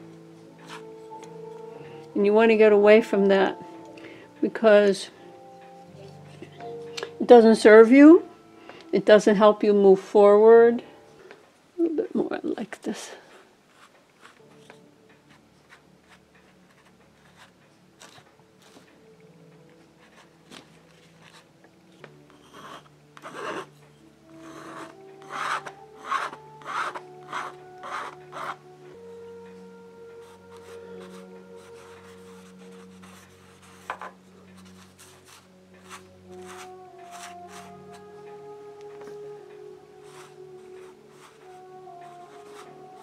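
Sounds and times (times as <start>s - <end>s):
soft background music: 0.0s - 43.0s.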